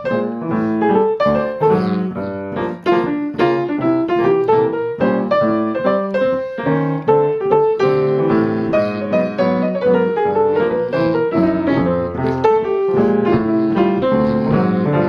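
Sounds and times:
jazz solo piano: 0:00.0 - 0:15.0.

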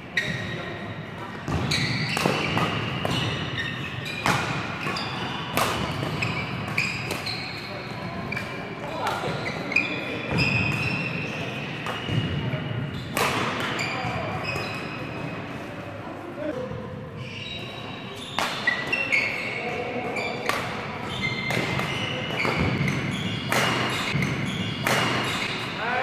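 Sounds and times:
shoes squeaking on court floor: 0:00.0 - 0:15.8, 0:16.4 - 0:26.0
rackets hitting shuttlecock: 0:01.2 - 0:07.7, 0:10.3 - 0:14.9, 0:18.2 - 0:19.4, 0:20.0 - 0:25.8.

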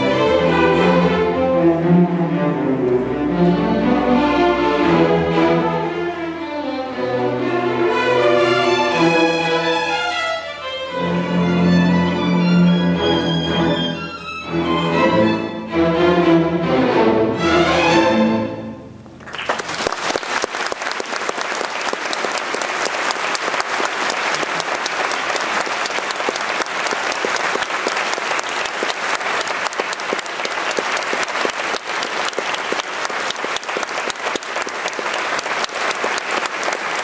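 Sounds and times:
audience applauding: 0:19.2 - 0:37.0.

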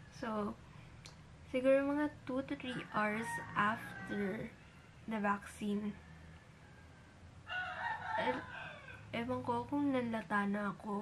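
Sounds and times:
rooster crowing: 0:02.7 - 0:04.9, 0:06.0 - 0:09.2.

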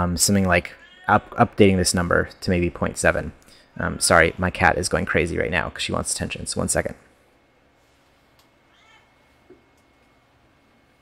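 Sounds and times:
cat meowing: 0:08.7 - 0:09.2.

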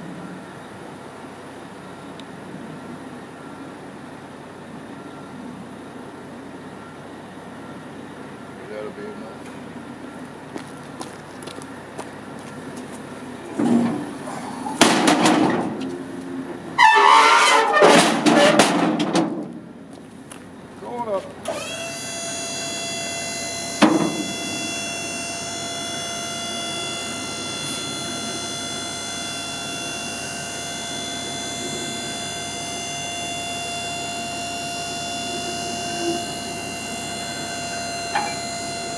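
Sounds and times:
metal clunk: 0:14.8 - 0:15.9, 0:17.0 - 0:19.5, 0:38.1 - 0:38.4
hydraulic pump motor whine: 0:21.4 - 0:38.9.

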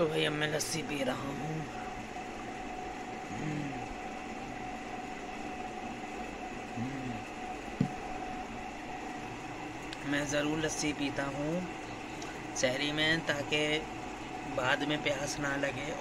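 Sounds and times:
room hum: 0:00.0 - 0:16.0
throat swallowing sounds: 0:03.3 - 0:04.0, 0:06.7 - 0:08.0.

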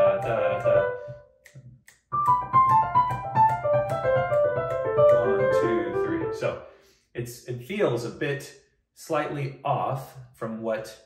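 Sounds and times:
metronome clicking: 0:00.0 - 0:00.8, 0:01.4 - 0:06.2
digital piano descending triplets: 0:00.0 - 0:01.2, 0:02.1 - 0:06.6.

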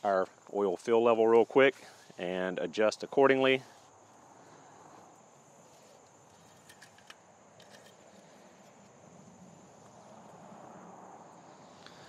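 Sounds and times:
faint steady hiss: 0:00.0 - 0:12.0
dipstick clicks and rag rustles: 0:06.3 - 0:09.0.

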